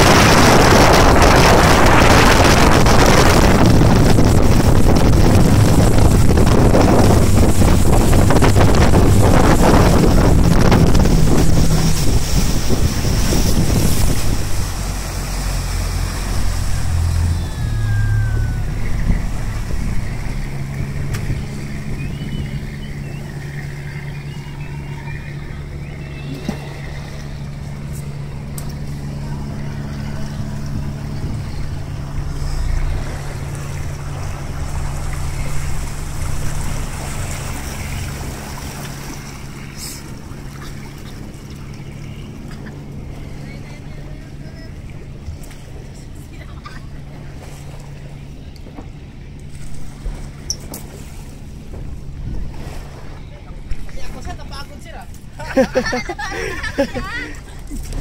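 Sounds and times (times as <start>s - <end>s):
wind on microphone: 0.0s - 43.4s
rush of boat wake: 0.0s - 58.0s
speedboat engine: 0.0s - 58.0s.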